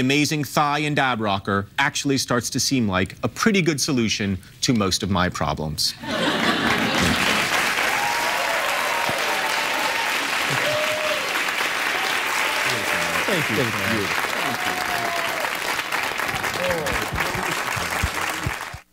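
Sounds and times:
audience applauding and cheering: 6.6s - 18.9s
whoops: 7.8s - 13.3s, 14.3s - 15.6s.

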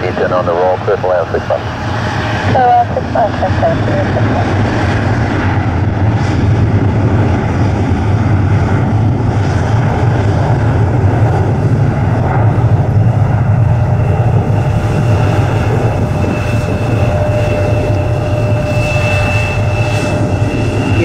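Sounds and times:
thin steady whine: 0.0s - 1.9s, 13.9s - 21.0s
jet engines rumbling at takeoff: 0.0s - 21.0s.

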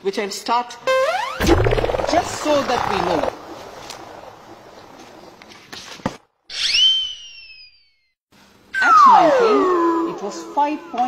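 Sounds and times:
swooping whistle: 0.9s - 3.3s, 6.5s - 8.1s
low tone gliding down: 0.9s - 5.7s.

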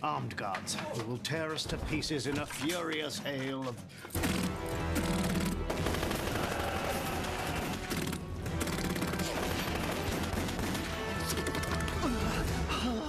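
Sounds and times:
rapid gunfire: 4.1s - 12.6s.

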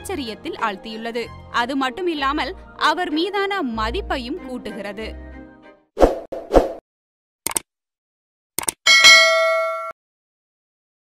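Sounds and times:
bright ringing ding: 8.9s - 10.0s.

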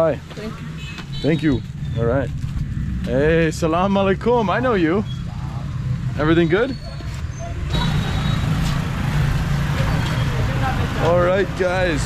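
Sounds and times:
motorcycle engines running: 0.0s - 12.0s
street noise: 0.0s - 12.0s.

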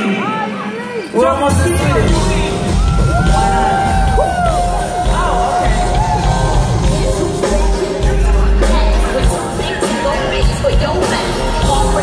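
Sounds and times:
crowd cheering: 0.0s - 7.8s
band with heavy bass beat: 1.2s - 12.0s
woman singing into microphone: 3.4s - 12.0s.

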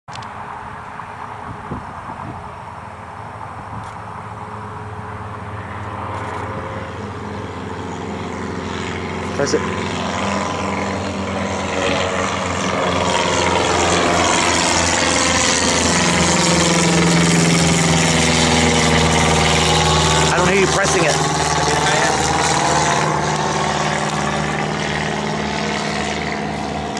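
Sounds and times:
propeller aircraft engine drone: 0.1s - 26.9s.

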